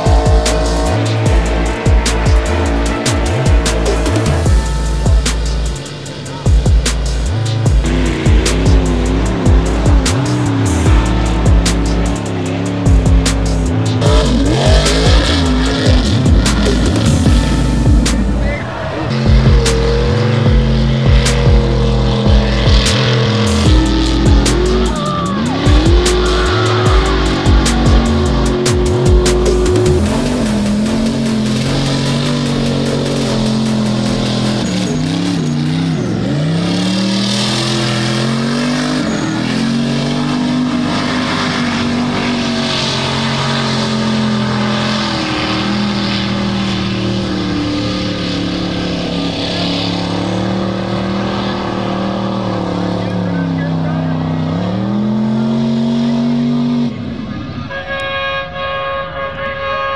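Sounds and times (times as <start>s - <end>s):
truck engine revving high: 0.0s - 59.9s.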